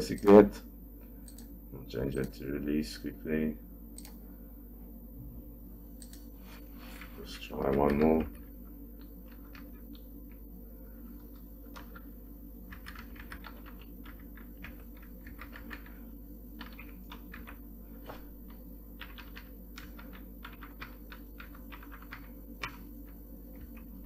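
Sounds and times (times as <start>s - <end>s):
steady low hum: 0.0s - 24.0s
computer keyboard typing: 6.0s - 6.3s, 7.0s - 8.4s, 9.0s - 10.0s, 11.2s - 12.0s, 12.7s - 16.0s, 16.6s - 23.9s.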